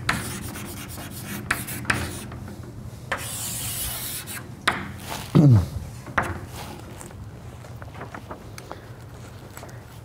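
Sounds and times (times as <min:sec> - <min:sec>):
writing on a board: 0:00.0 - 0:02.3, 0:03.1 - 0:05.2
person humming: 0:05.3 - 0:05.8.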